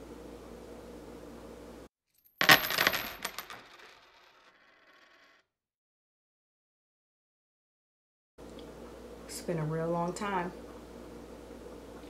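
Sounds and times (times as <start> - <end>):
coins clinking on hard surface: 2.2 - 5.4.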